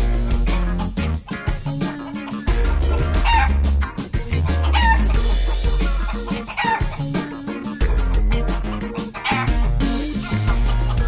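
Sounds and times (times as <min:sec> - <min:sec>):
funky music with heavy bass: 0:00.0 - 0:11.0
chicken calls: 0:00.6 - 0:11.0.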